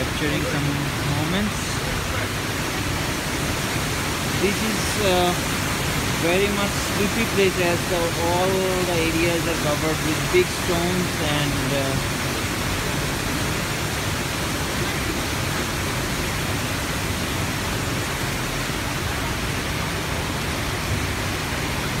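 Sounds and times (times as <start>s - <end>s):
stream rushing over boulders: 0.0s - 22.0s.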